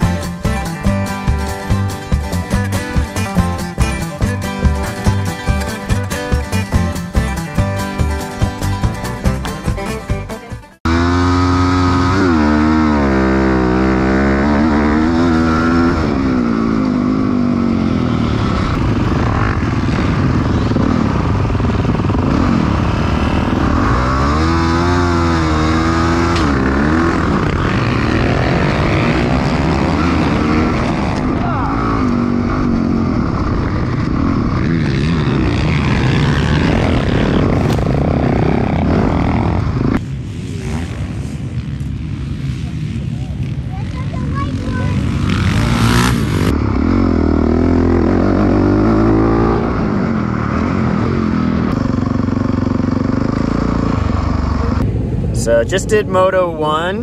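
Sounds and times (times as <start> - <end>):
other bikes nearby: 10.8 - 49.0
dirt bike engine revving: 10.8 - 54.8.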